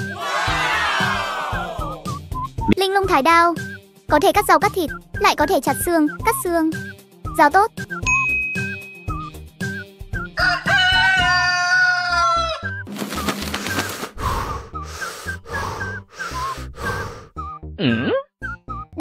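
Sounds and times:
soft background music: 0.0 - 19.0
bright ding: 8.1 - 9.1
short rushing bursts: 12.9 - 14.4.

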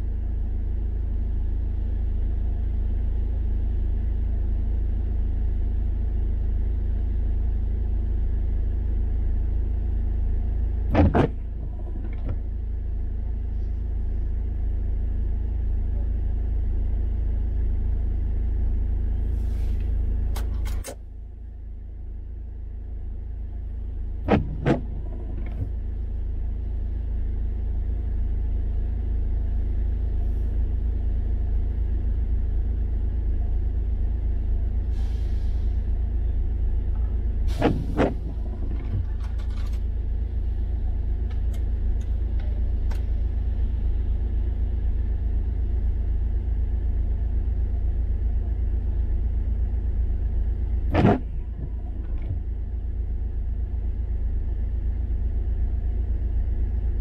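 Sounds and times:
car engine low rumble: 0.0 - 57.0.

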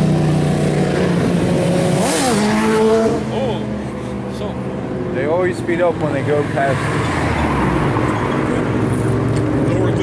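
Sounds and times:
car passing: 0.2 - 10.0.

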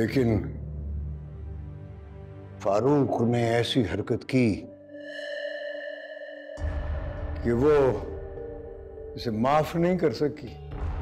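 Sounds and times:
held ringing synth tone: 4.7 - 9.6.

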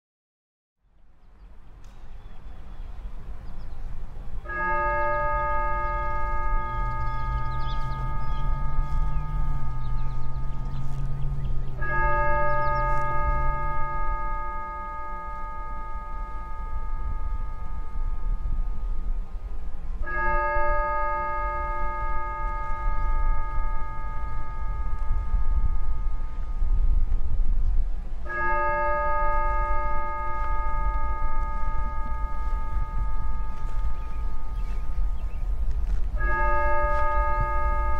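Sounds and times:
steady low rumble: 0.8 - 28.3, 29.0 - 37.9
church bell tolling: 4.4 - 27.1, 28.2 - 37.9
low background rumble: 5.1 - 20.0
bell ringing: 5.6 - 19.0.

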